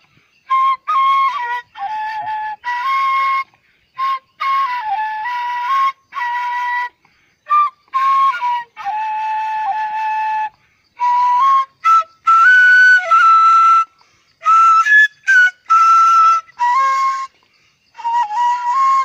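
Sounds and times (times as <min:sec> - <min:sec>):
bamboo flute melody: 0:00.0 - 0:19.0.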